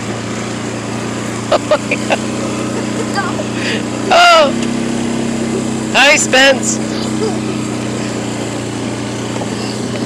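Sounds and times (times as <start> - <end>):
small vehicle engine running: 0.0 - 10.0.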